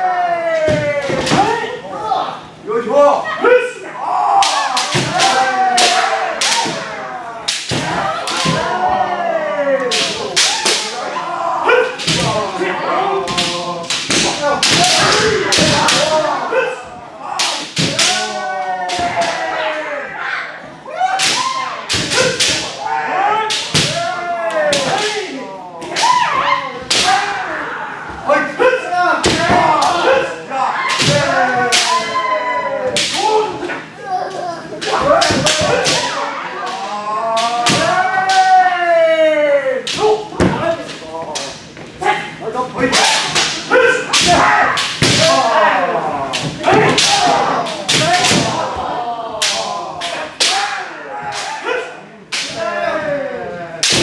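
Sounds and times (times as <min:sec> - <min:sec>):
fencers shouting: 0:03.0 - 0:54.0
bamboo swords striking armour: 0:43.0 - 0:45.5, 0:46.4 - 0:48.7.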